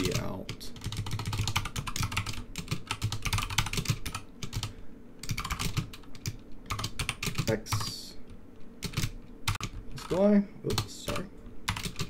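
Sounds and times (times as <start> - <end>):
fast typing on keyboard: 0.0 - 8.0, 8.8 - 12.0.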